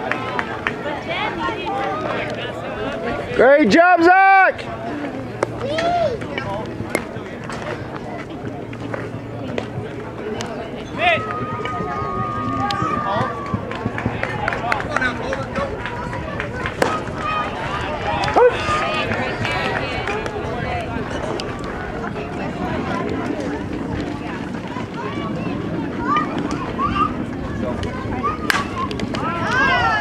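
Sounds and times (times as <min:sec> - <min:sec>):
spectators and players chattering: 0:00.0 - 0:30.0.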